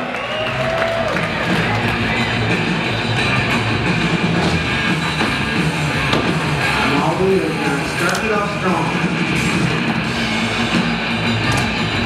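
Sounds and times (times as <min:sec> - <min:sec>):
loud rock music with guitar: 0:00.5 - 0:12.0.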